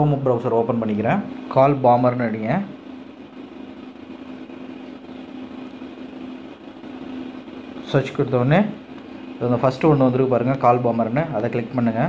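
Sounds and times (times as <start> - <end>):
faint constant tone: 0.0 - 12.0
low machine hum: 0.0 - 12.0.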